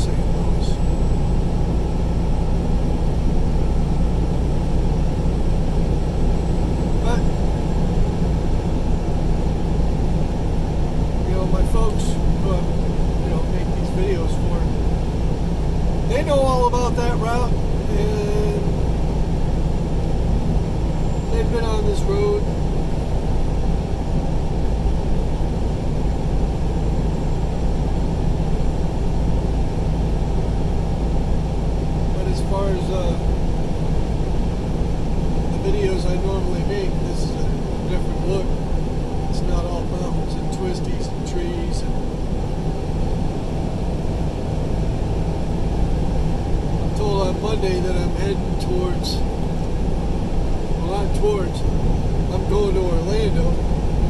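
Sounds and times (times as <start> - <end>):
vehicle road and engine noise: 0.0 - 54.0.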